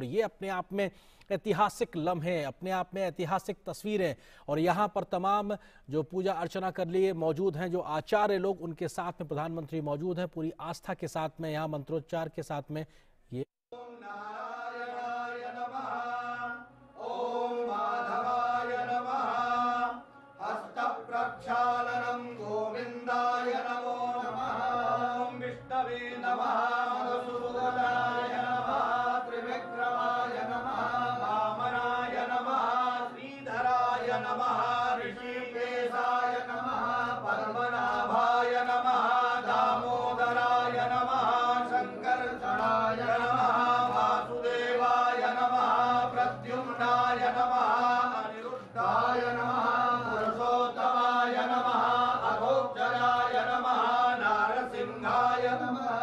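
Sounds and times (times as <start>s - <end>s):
priests chanting: 13.7s - 56.0s.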